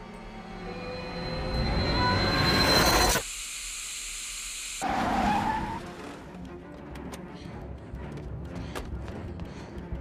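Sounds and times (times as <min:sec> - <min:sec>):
car tyres screeching: 0:04.8 - 0:06.2
film music score: 0:05.4 - 0:10.0.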